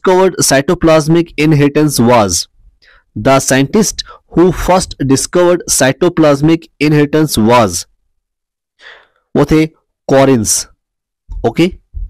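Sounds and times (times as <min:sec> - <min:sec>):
person speaking: 0:00.0 - 0:08.0, 0:09.3 - 0:12.0
faint breath: 0:02.8 - 0:03.1, 0:08.8 - 0:09.3.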